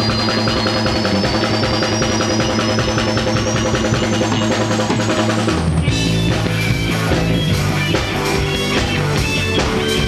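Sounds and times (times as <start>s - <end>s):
drum kit fast beat: 0.0s - 10.0s
rock band playing loud: 0.0s - 10.0s.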